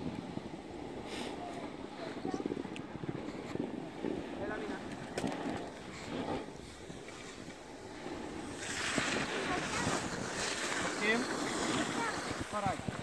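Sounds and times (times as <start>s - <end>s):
snowboard edges scraping snow: 0.0s - 13.0s
wind buffeting microphone: 0.0s - 13.0s.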